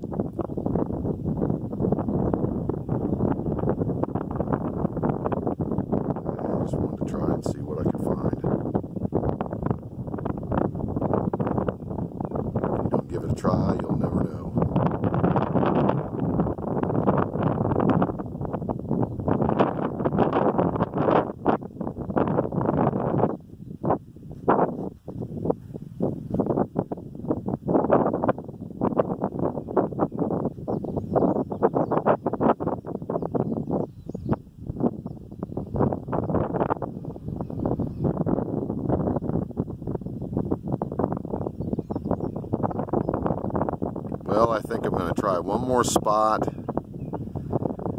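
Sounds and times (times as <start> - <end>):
wind buffeting microphone: 0.0 - 47.9.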